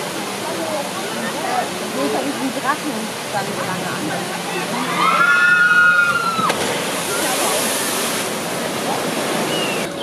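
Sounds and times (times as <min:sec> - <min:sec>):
rushing splashing water: 0:00.0 - 0:10.0.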